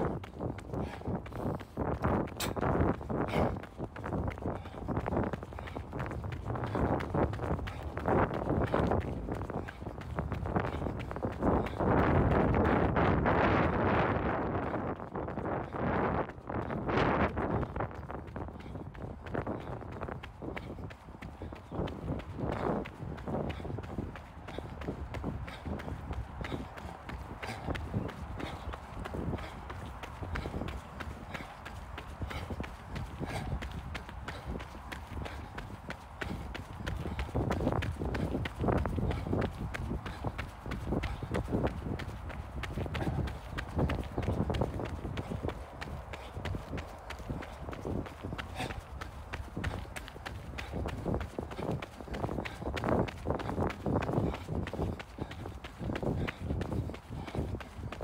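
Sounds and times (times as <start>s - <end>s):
running footsteps on gravel: 0.0s - 58.0s.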